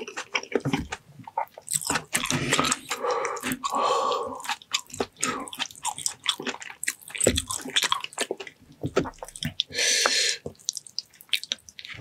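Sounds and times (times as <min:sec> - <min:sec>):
person chewing: 0:00.0 - 0:12.0.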